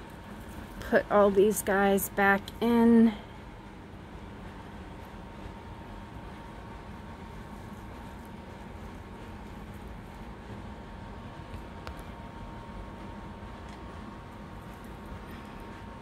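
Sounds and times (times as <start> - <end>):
room noise hum and hiss: 0.0 - 16.0.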